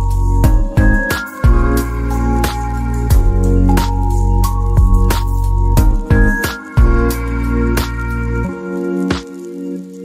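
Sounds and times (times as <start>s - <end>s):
electronic music with heavy bass: 0.0s - 9.2s.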